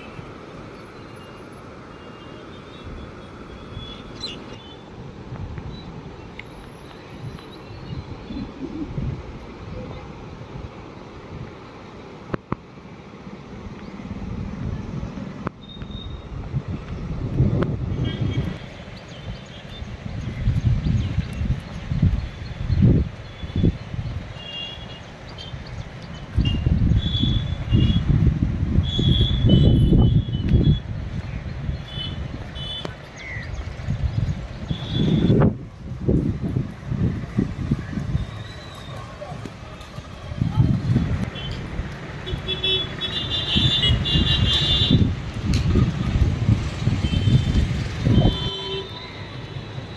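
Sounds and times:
wind buffeting microphone: 5.0 - 11.6, 13.5 - 24.4, 25.4 - 49.9.

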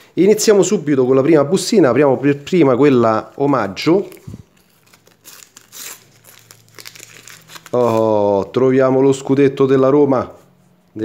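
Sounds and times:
wrapper crinkling: 3.0 - 8.5
packet tearing: 3.4 - 8.4.

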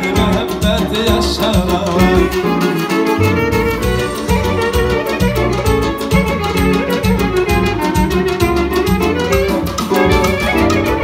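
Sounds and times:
clarinet playing melody: 0.0 - 11.0
keyboard: 0.0 - 11.0
violin: 2.3 - 11.0
steady low beat: 3.1 - 5.9.

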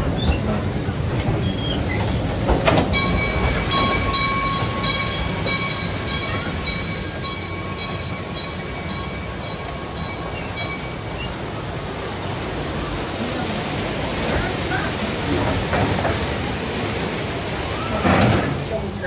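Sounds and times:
train rolling on track: 0.0 - 19.0
bell ringing: 2.9 - 11.0.

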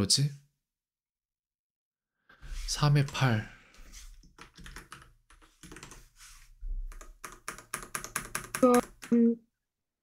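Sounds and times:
computer keyboard typing: 4.4 - 6.1, 6.9 - 9.2
person speaking: 8.6 - 9.4.

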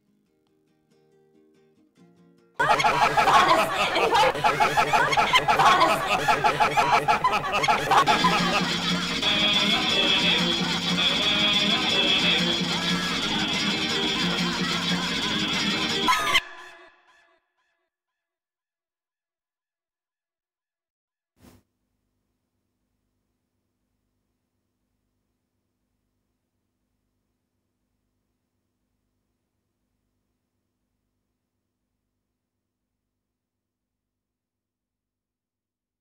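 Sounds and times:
loud warbling laughter: 2.6 - 16.7.

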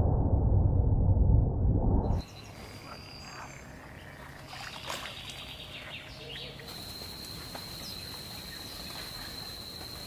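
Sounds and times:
frogs croaking: 2.2 - 10.0
faint high chirps: 4.5 - 10.0.

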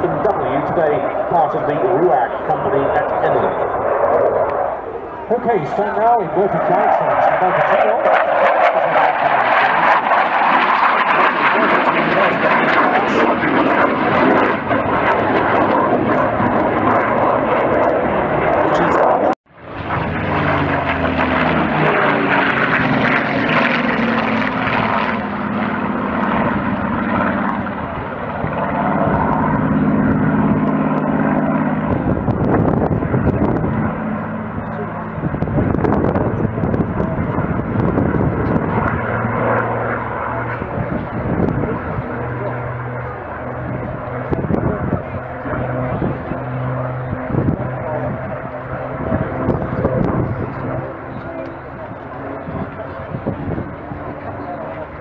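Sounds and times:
fighter jet engine noise: 0.0 - 55.0
propeller plane flying past: 0.0 - 55.0.

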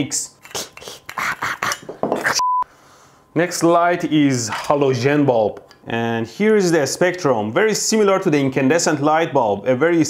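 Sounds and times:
censor bleep: 2.4 - 2.7.

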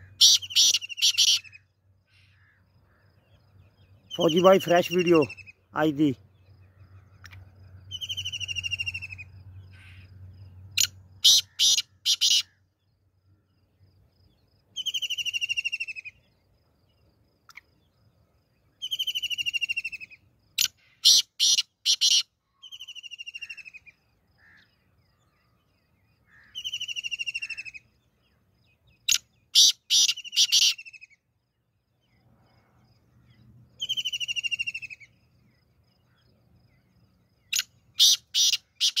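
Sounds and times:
francolin calling: 0.0 - 13.6, 14.2 - 39.0.

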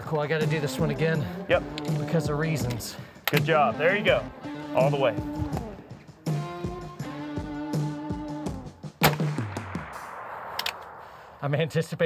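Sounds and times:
background music: 0.0 - 10.1
rifle shot with echo: 9.0 - 11.5.

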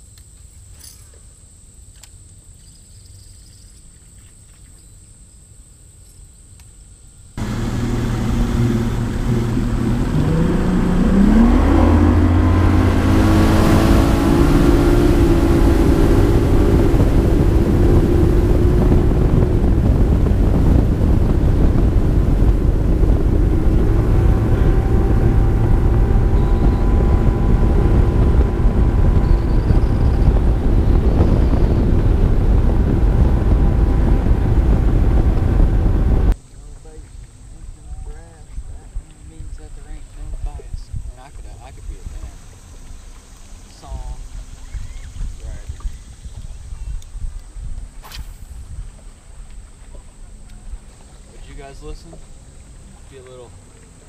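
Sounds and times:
outboard motor revving: 7.4 - 36.4, 48.5 - 54.0.

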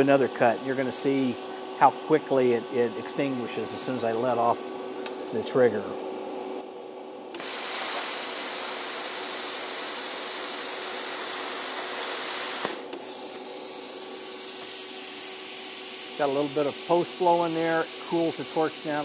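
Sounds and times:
plasma cutter arc hissing: 7.4 - 19.0.

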